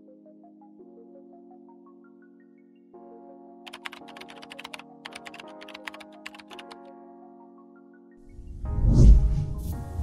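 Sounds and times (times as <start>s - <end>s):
background music with held chords: 0.0s - 10.0s
computer keyboard typing clicks: 3.7s - 6.9s.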